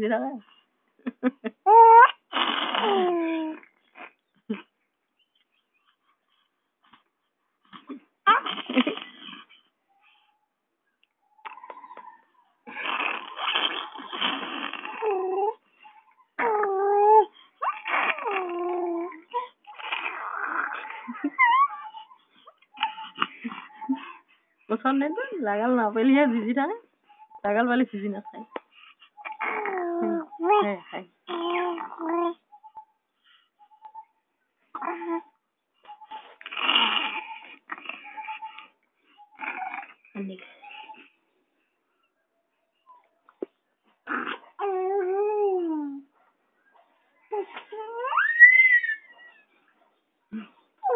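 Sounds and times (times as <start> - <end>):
baby cooing and squealing: 1.7 - 4.1, 7.8 - 9.4, 13.1 - 24.0, 29.2 - 30.7, 31.3 - 32.8, 35.9 - 38.6, 47.3 - 49.2.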